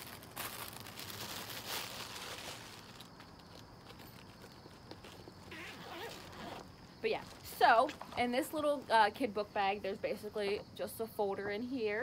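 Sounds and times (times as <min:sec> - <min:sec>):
soft rustling: 0:00.0 - 0:09.0.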